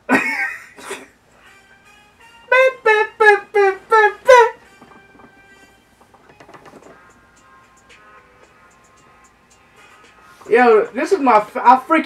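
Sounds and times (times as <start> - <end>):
man laughing loudly: 0.0 - 1.2, 2.5 - 4.6
faint background music: 0.0 - 12.0.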